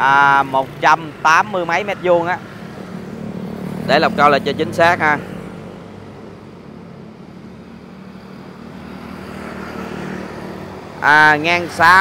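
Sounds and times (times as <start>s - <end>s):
vehicle engine hum and road noise: 0.0s - 12.0s.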